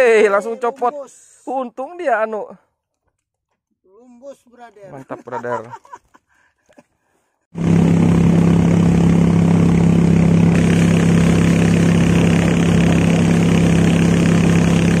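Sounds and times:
boat engine running: 0:07.6 - 0:15.0.

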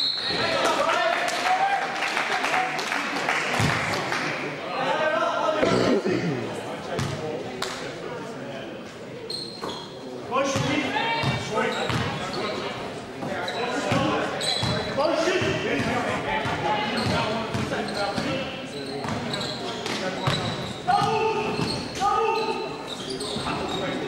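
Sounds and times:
voices calling out in a hall: 0:00.0 - 0:24.0.

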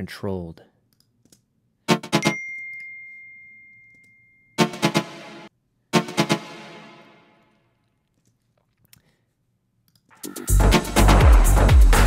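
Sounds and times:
synth chord stabs with reverb: 0:04.6 - 0:07.4.

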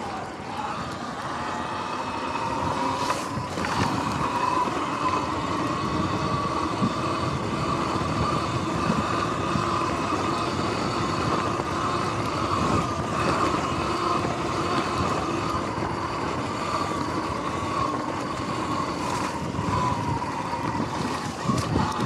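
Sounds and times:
electric motor whine: 0:00.0 - 0:22.0.

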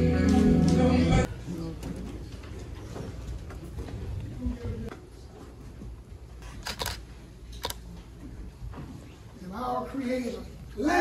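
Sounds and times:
music with singing: 0:00.0 - 0:01.3.

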